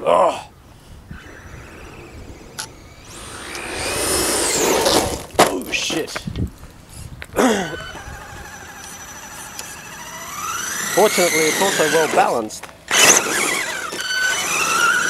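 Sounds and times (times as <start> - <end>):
electric motor whining: 1.0 - 5.3, 7.7 - 15.0.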